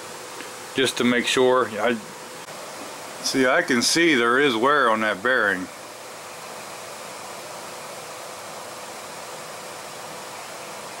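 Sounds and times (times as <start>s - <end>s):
faint constant hum: 0.0s - 11.0s
steady hiss: 0.0s - 11.0s.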